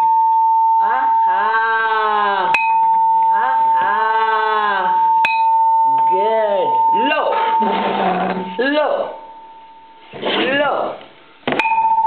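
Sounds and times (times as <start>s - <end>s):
steady high-pitched tone: 0.0s - 10.2s.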